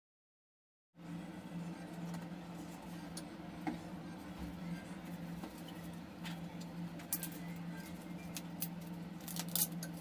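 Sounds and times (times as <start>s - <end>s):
steady low hum: 1.0s - 10.0s.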